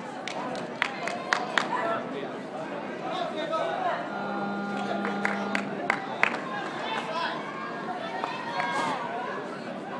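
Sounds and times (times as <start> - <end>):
crowd chatter in a large hall: 0.0 - 9.9.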